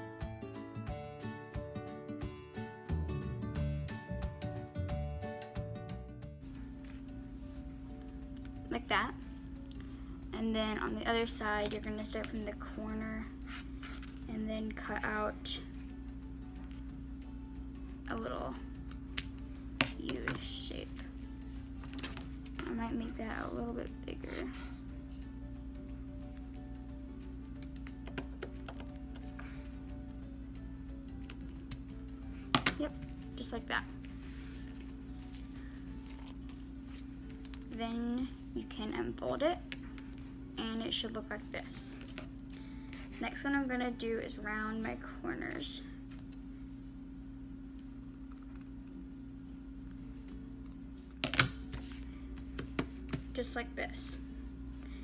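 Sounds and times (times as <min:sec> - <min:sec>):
background music: 0:00.0 - 0:45.8.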